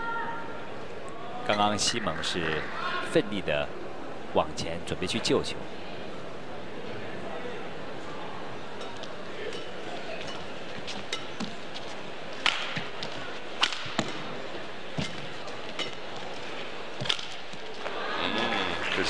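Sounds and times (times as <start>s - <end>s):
arena crowd hum: 0.0s - 19.0s
rackets hitting shuttlecock: 12.4s - 14.4s.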